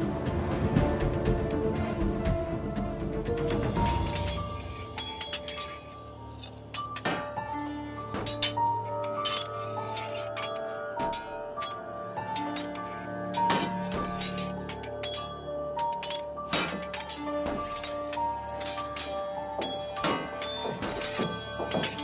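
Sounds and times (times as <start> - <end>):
sword blades clashing: 3.8 - 22.0.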